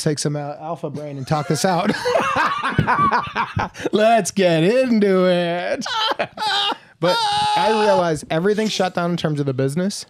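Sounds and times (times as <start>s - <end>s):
men laughing: 1.0s - 4.0s, 5.7s - 8.1s.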